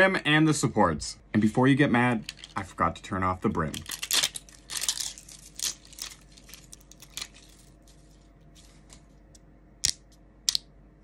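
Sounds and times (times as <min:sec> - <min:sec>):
plastic crackling and snapping: 0:02.2 - 0:02.6, 0:03.4 - 0:08.0.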